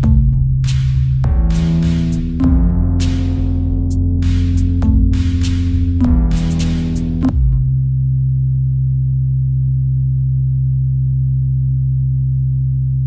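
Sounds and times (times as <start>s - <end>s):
low synthesizer note: 0.0s - 13.0s.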